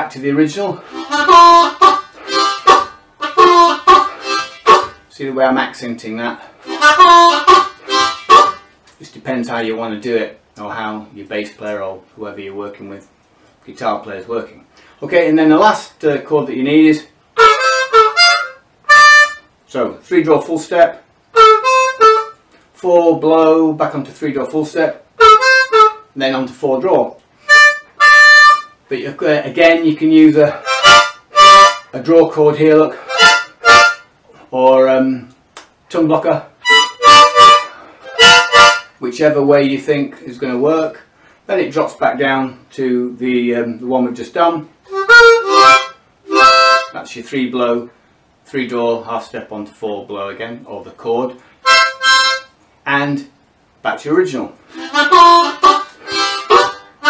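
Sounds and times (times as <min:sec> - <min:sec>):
blues harmonica: 0:00.8 - 0:05.1, 0:06.4 - 0:08.8, 0:17.4 - 0:19.6, 0:21.3 - 0:22.6, 0:25.1 - 0:26.2, 0:27.4 - 0:28.8, 0:30.5 - 0:32.0, 0:32.9 - 0:34.2, 0:36.6 - 0:39.0, 0:44.9 - 0:47.0, 0:51.6 - 0:52.6, 0:54.7 - 0:57.0.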